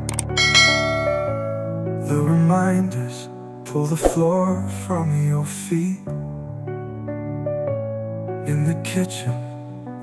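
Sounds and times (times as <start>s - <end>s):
piano ballad: 0.0s - 10.0s.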